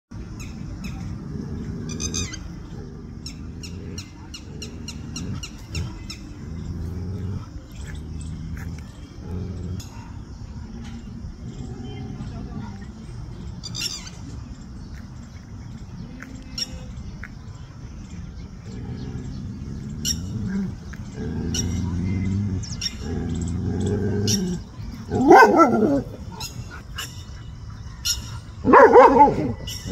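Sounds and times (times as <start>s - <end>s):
birds chirping: 0.1s - 29.9s
low uneven rumble: 0.2s - 29.9s
dog growling low: 0.8s - 13.6s, 18.3s - 27.0s.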